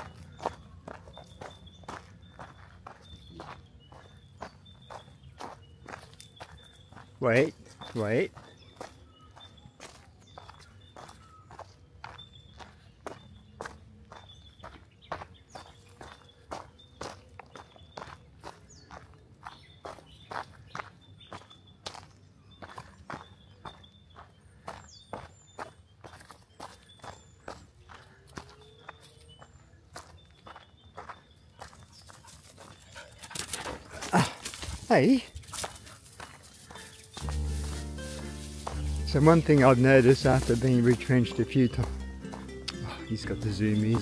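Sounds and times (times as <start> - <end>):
footsteps crunching on dry leaves: 33.6 - 44.0.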